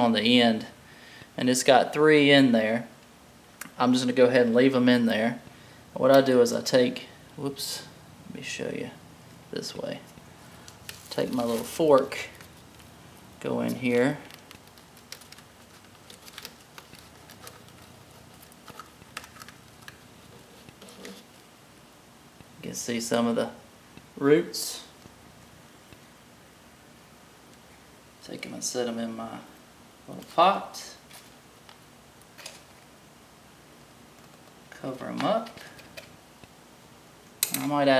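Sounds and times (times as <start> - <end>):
hands rustling in potting soil: 10.6 - 19.2
short scratchy rustle: 11.0 - 11.9.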